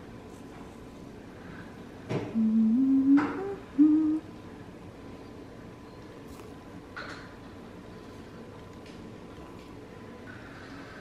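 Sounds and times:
woman humming low notes: 0:02.3 - 0:04.3.

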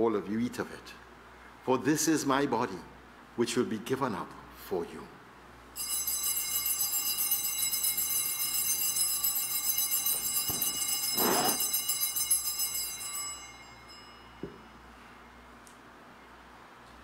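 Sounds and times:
small hand bells ringing: 0:05.8 - 0:14.9.

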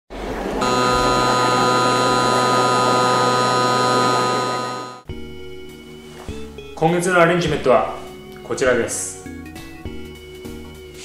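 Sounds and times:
loud electronic buzzing drone: 0:00.6 - 0:05.1.

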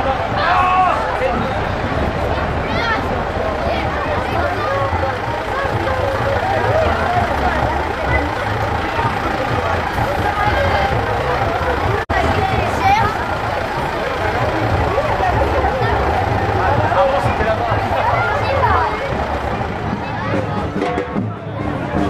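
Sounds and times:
children chattering: 0:00.0 - 0:22.0
low engine hum: 0:00.0 - 0:22.0.

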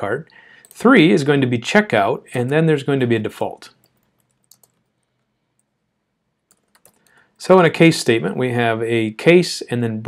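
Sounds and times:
soft keyboard typing: 0:03.7 - 0:05.7, 0:06.4 - 0:07.2.

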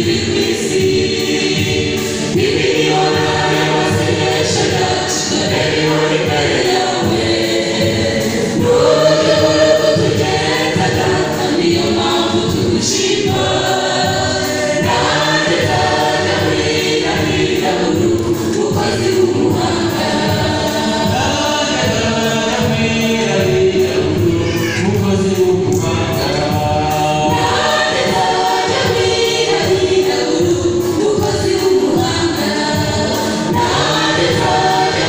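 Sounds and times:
church choir singing gospel: 0:00.0 - 0:35.0.

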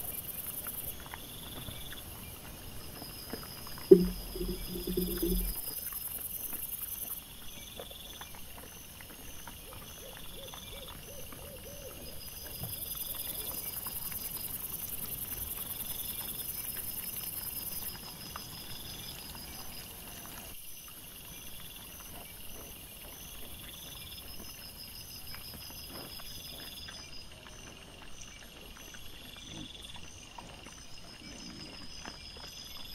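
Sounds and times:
insect chirps: 0:00.0 - 0:32.9.

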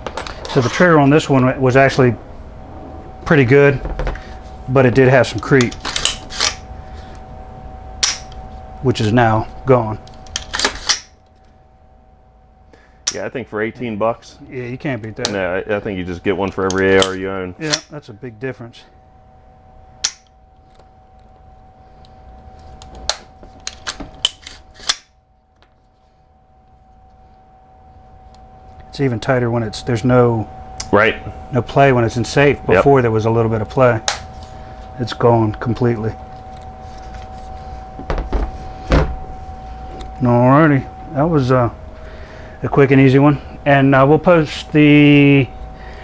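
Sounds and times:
faint steady hum: 0:00.0 - 0:46.0.

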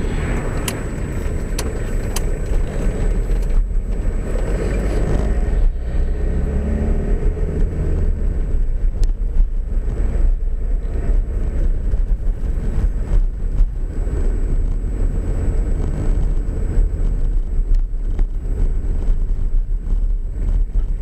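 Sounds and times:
car engine and tyre rumble: 0:00.0 - 0:21.0.

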